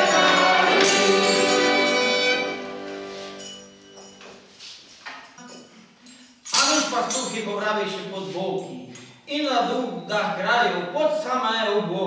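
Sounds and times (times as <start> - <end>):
accordion and fiddle chord: 0.0 - 3.4.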